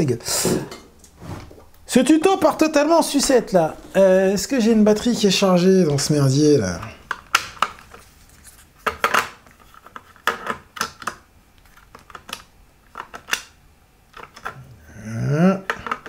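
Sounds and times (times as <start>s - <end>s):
batteries clicking and clattering: 8.8s - 14.7s, 15.6s - 16.0s.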